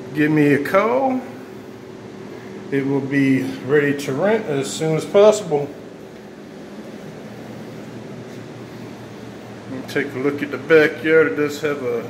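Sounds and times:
air conditioner hiss and hum: 0.0 - 12.0.

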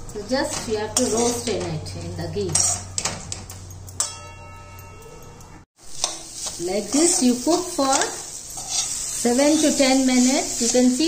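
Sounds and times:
pan ringing: 2.8 - 5.7.

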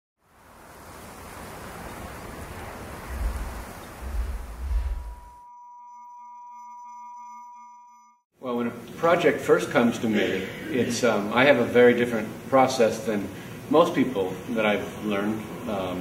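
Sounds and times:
rush of noise: 2.6 - 5.3
deep booms: 3.1 - 5.3.

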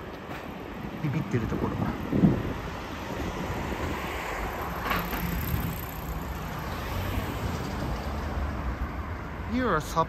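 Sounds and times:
road traffic: 0.0 - 10.0
wind rushing on microphone: 1.2 - 4.3.

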